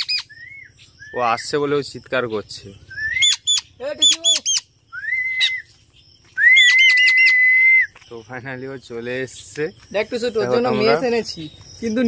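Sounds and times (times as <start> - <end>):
myna chirps and whistles: 0.0 - 1.6, 2.8 - 8.0.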